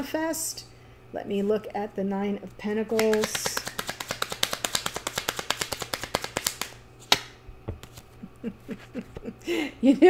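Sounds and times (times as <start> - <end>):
sharp card snap: 2.9 - 8.0
cards being shuffled: 2.9 - 9.2.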